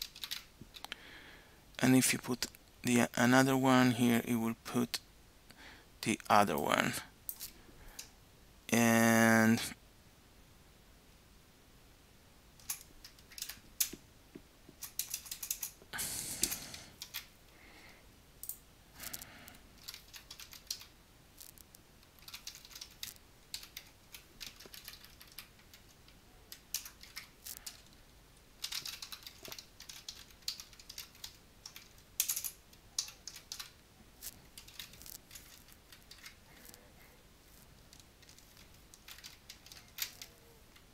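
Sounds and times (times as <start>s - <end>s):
computer keyboard typing: 0.0s - 0.9s, 12.6s - 13.9s, 14.8s - 15.8s, 16.4s - 17.3s, 19.8s - 25.9s, 26.5s - 27.9s, 28.6s - 36.8s, 37.9s - 40.3s.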